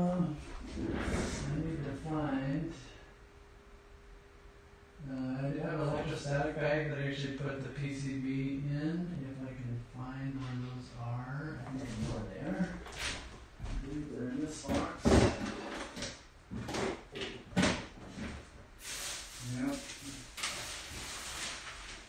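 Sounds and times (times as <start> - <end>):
rustling: 18.0 - 22.0.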